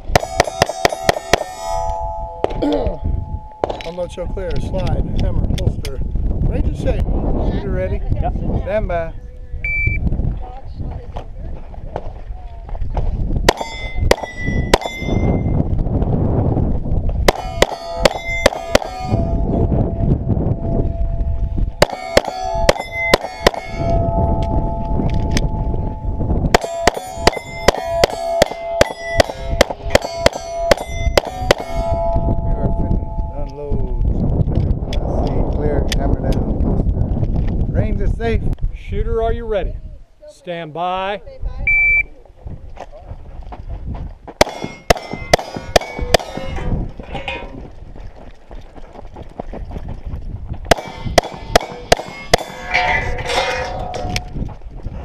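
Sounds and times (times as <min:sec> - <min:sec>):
clang of struck steel: 0:00.1 - 0:04.5, 0:13.5 - 0:15.6, 0:17.3 - 0:19.7, 0:21.8 - 0:33.7, 0:44.4 - 0:47.6, 0:50.7 - 0:54.4
pistol shots: 0:13.5 - 0:15.1, 0:17.3 - 0:19.0, 0:21.8 - 0:23.8, 0:44.4 - 0:46.4, 0:50.7 - 0:52.6.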